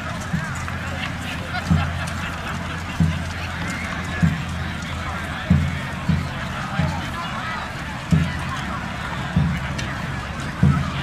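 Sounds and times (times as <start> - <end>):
distant crowd voices: 0.0 - 11.0.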